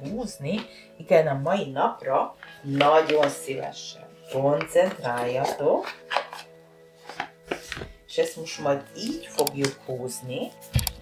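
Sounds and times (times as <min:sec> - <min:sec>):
faint background music: 0:00.0 - 0:11.0
cards clicking and tapping: 0:07.1 - 0:07.9.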